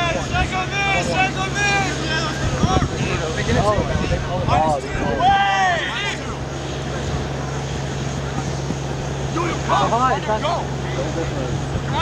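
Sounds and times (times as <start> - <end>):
distant shout: 0.0 - 2.9, 4.6 - 6.5
wind noise on microphone: 0.0 - 10.0, 10.7 - 12.0
steady low drone: 0.0 - 12.0.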